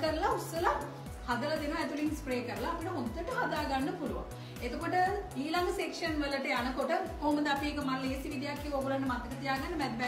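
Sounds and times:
background music: 0.0 - 10.0
woman speaking: 0.0 - 10.0.

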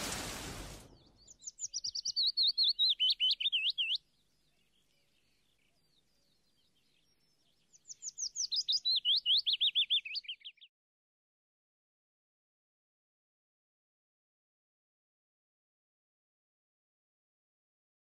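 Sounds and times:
rain: 0.0 - 1.0
songbird chirping: 0.0 - 10.7.

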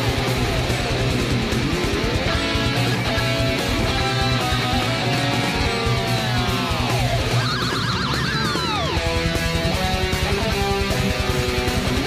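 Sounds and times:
electric guitar lead with vibrato: 0.0 - 12.0.

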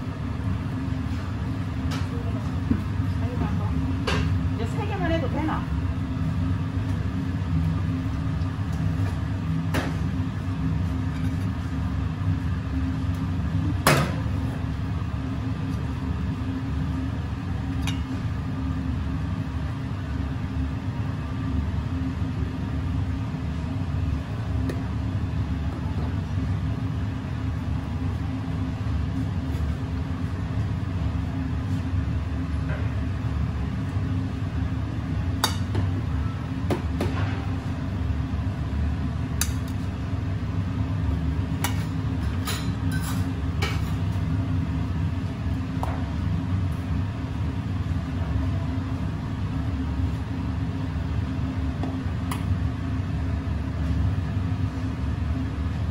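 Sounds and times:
kitchen equipment rumble: 41.6 - 44.3.

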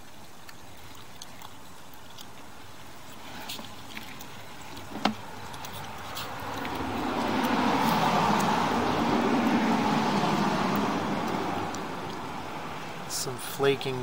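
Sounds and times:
car passing by: 5.0 - 13.2.

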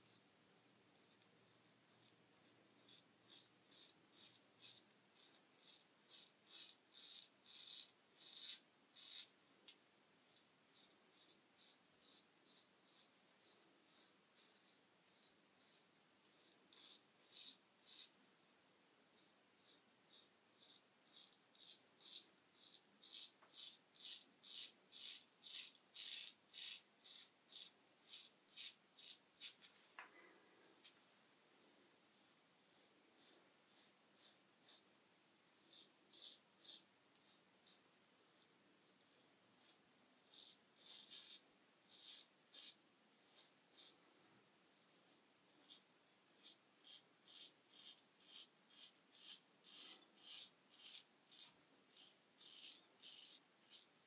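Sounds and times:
razor scraping stubble: 0.0 - 18.2, 19.2 - 29.7, 32.6 - 34.8, 35.6 - 37.8, 39.6 - 43.9, 45.5 - 54.0.

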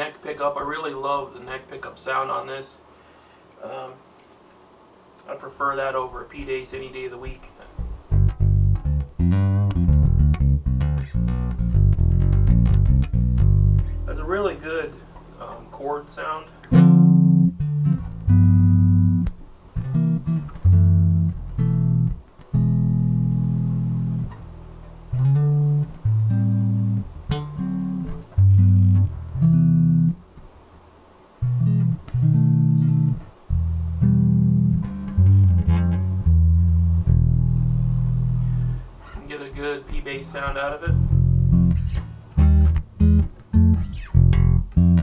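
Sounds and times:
electric bass plucked notes: 7.8 - 15.6, 16.6 - 30.2, 31.4 - 39.0, 40.4 - 45.0.

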